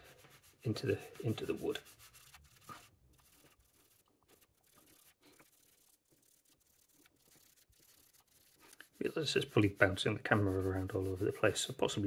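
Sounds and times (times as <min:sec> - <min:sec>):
fingers rubbing a fingerboard: 0:00.0 - 0:12.0.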